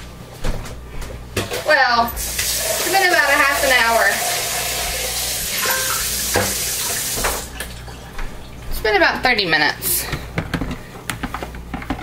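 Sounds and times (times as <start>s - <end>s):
water running from tap: 2.1s - 8.0s.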